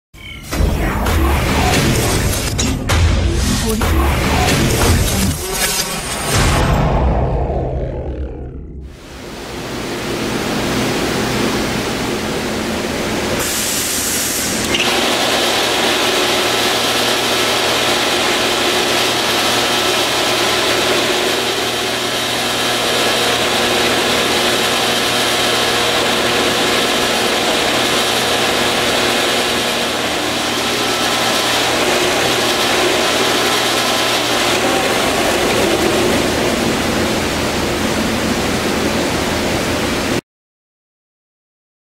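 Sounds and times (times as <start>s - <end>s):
belt sander running: 14.6s - 39.0s.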